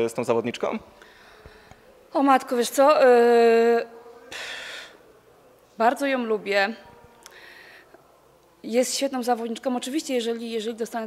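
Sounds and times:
woman breathing in: 0:01.0 - 0:01.8
woman speaking: 0:08.6 - 0:11.0.

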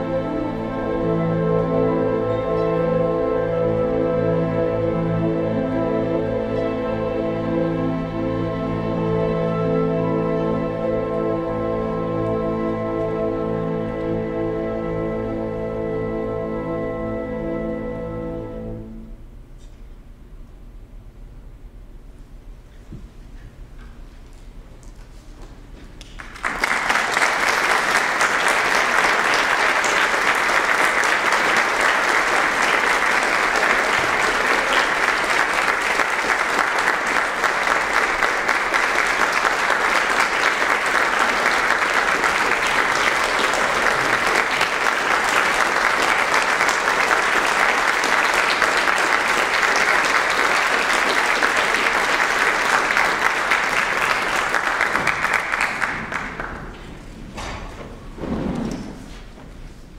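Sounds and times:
audience applauding: 0:26.0 - 0:57.0.

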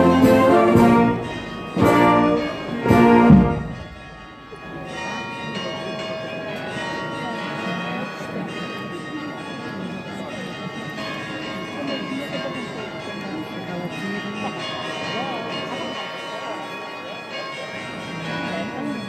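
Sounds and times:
brass band chords: 0:00.0 - 0:04.3
church bells ringing: 0:00.0 - 0:19.0
crowd chatter: 0:00.0 - 0:19.0.

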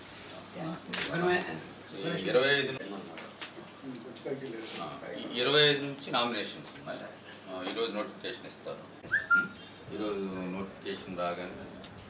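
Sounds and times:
high whistle-like tone: 0:09.1 - 0:09.6.

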